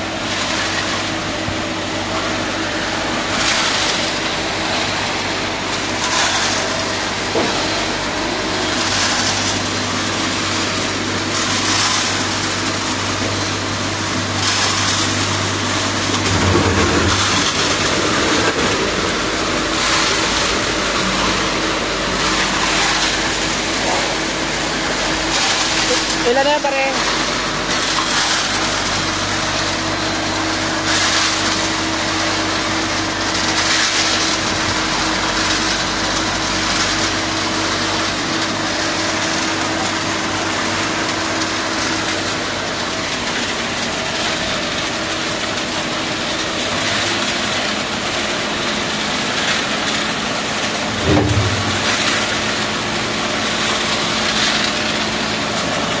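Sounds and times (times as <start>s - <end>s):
diesel engine running under load: 0.0s - 56.0s
steady hum: 50.6s - 54.2s
loud knock: 51.0s - 52.0s.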